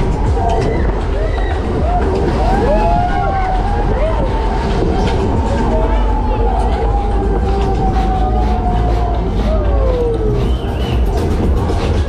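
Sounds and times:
funfair ride rumbling: 0.0s - 12.0s
people shouting: 0.0s - 12.0s.

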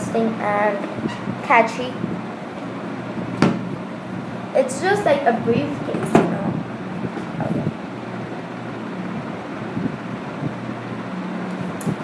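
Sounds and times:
steady low hum: 0.0s - 12.0s
sharp knock: 3.4s - 3.6s.

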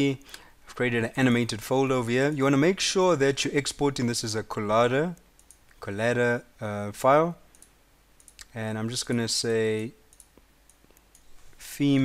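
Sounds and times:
computer keys clicking: 5.2s - 5.8s, 7.5s - 11.3s.

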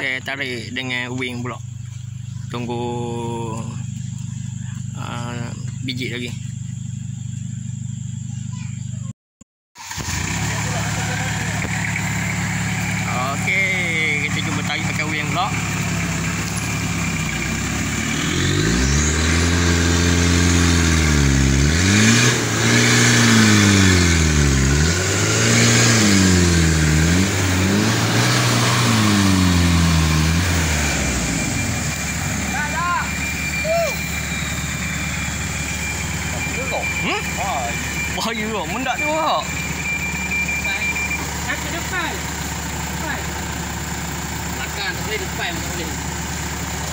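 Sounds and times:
lorry engine revving: 9.8s - 46.9s
faint shouts: 32.5s - 34.1s.

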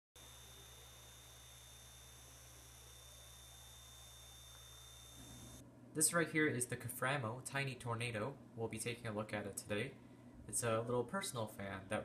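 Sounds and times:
small fan humming: 0.2s - 6.0s.

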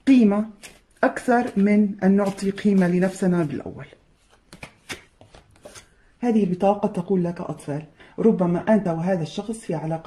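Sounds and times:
cards clicking and tapping: 4.5s - 5.9s.

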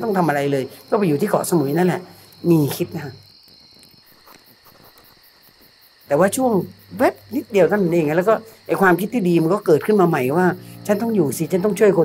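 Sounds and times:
cricket high trill: 0.0s - 12.0s
high-pitched cricket chirping: 0.0s - 12.0s.

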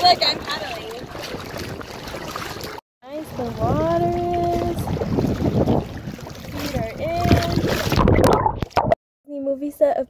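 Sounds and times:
paddle strokes splashing: 0.0s - 8.8s
water sloshing against hull: 0.0s - 9.0s
wind on microphone: 0.0s - 9.0s.

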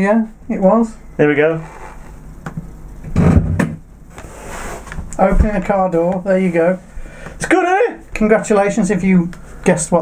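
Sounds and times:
faint hiss: 0.0s - 2.6s.

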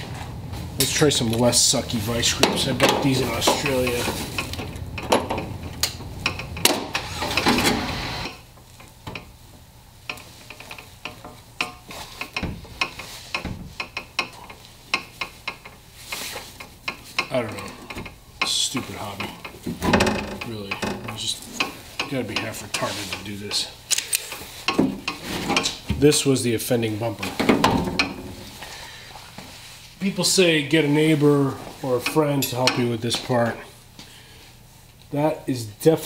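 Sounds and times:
metal scraping: 0.0s - 8.4s
hand tools clinking: 2.2s - 8.3s.

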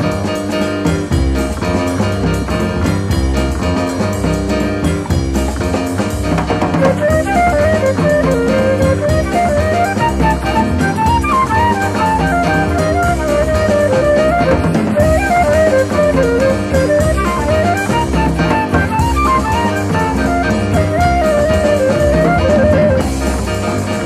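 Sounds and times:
bass line: 0.0s - 24.0s
drums: 0.0s - 24.0s
jazz lead melody: 0.0s - 24.0s.

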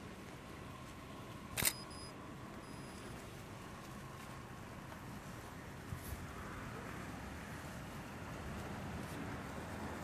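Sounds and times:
camera shutter click: 1.6s - 2.0s
faint thin high tones: 1.6s - 3.2s.

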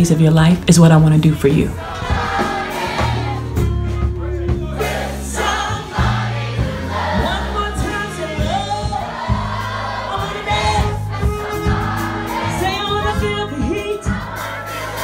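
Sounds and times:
live band playing: 0.0s - 15.0s
group of voices singing: 1.7s - 15.0s.

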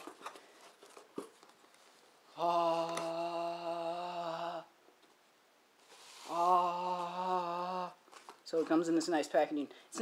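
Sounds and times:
man singing held notes: 6.2s - 8.0s.

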